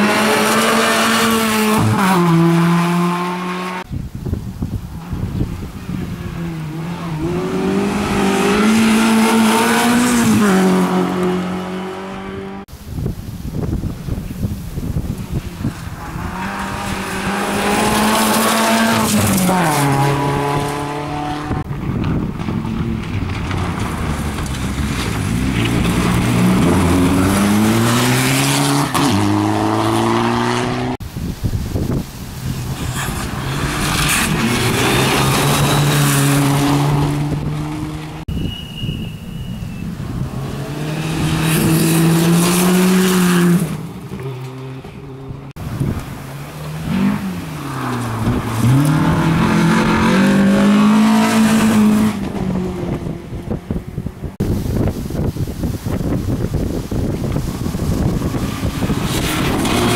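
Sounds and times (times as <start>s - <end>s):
rally car engines revving: 0.0s - 3.9s, 5.0s - 12.7s, 15.0s - 31.0s, 31.8s - 55.3s, 56.0s - 59.9s.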